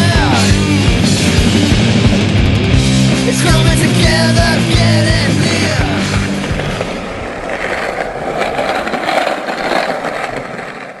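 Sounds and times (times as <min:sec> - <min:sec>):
skateboard wheels rolling on pavement: 0:00.0 - 0:11.0.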